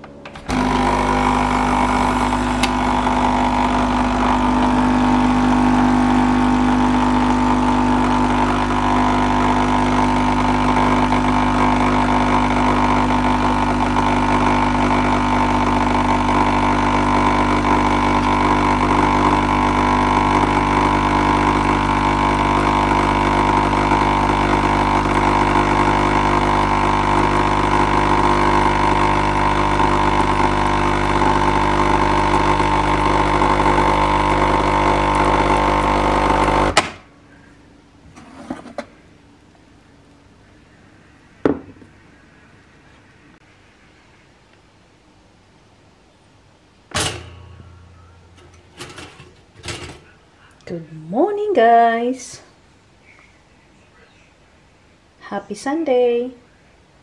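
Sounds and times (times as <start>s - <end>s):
coffee machine pump humming: 0.0s - 36.8s, 46.9s - 50.7s
coffee pouring into mug: 19.8s - 35.6s.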